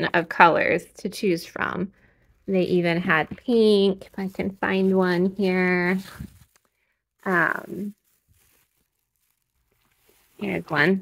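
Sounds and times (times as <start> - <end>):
plastic bags rustling: 1.6 - 11.0.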